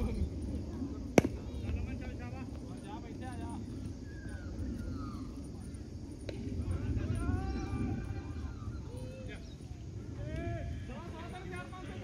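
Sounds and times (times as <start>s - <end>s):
people talking: 0.0s - 12.0s
wind rumble on microphone: 0.0s - 12.0s.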